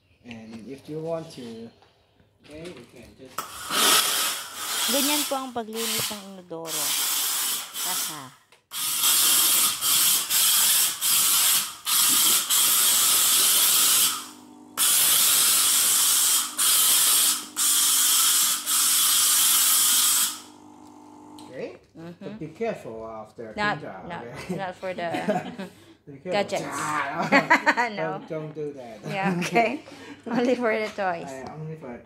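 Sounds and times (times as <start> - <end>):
steam cleaner nozzle hissing steam: 3.4 - 20.6.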